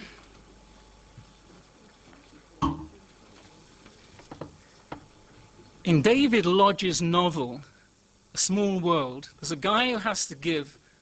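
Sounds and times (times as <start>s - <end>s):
room hush: 0.0s - 11.0s.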